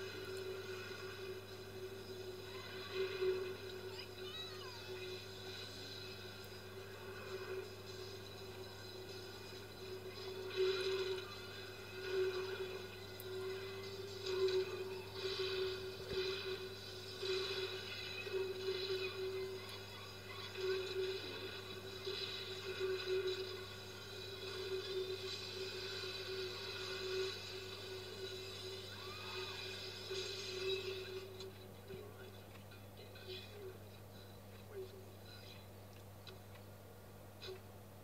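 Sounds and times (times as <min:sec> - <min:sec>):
faint music: 0:00.0 - 0:38.0.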